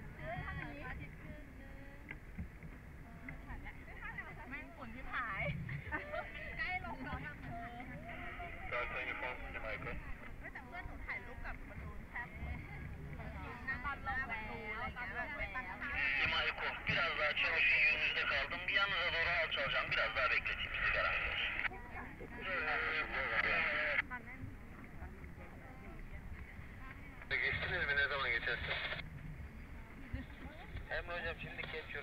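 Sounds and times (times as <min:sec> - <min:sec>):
voices talking: 0:00.0 - 0:32.0.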